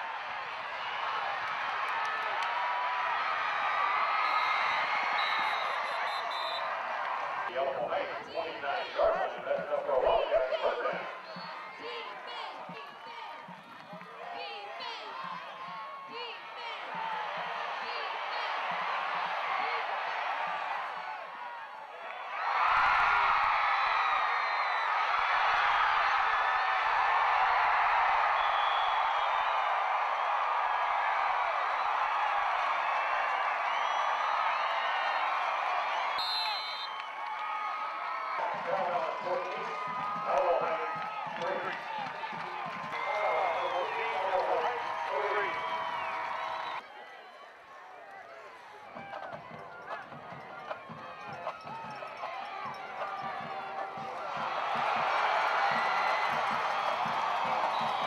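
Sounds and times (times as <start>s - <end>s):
stadium crowd cheering: 0.0s - 58.0s.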